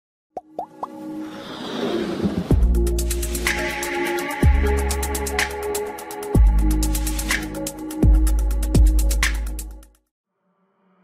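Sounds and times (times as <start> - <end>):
rising plop sound effects: 0.4 - 1.0.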